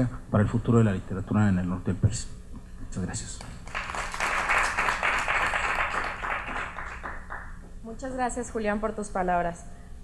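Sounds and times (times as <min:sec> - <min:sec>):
audience applauding: 0:03.6 - 0:07.6.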